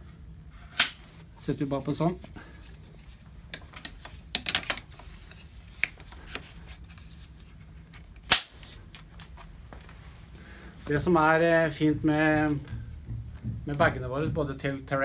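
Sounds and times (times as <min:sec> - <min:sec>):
sharp plastic snap: 0:00.8 - 0:01.0, 0:08.2 - 0:08.5.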